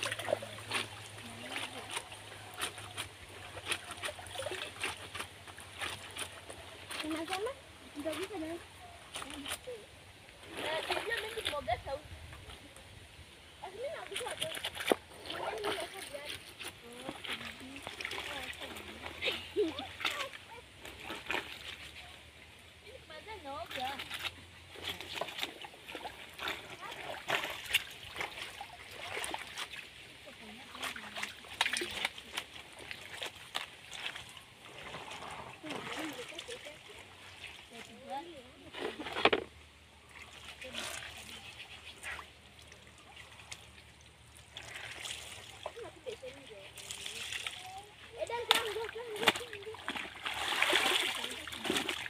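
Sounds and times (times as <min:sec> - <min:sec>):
laundry splashing in water: 0:00.0 - 0:08.6, 0:10.4 - 0:12.0, 0:13.6 - 0:22.2, 0:23.2 - 0:39.4, 0:40.0 - 0:52.0.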